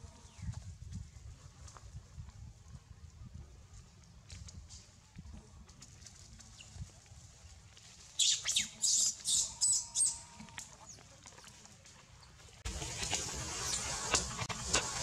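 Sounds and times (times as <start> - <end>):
baby monkey shrill cries: 8.2 - 10.2.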